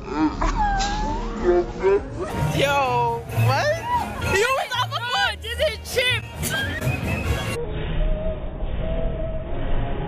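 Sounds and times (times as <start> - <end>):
women's voices: 2.2 - 6.2.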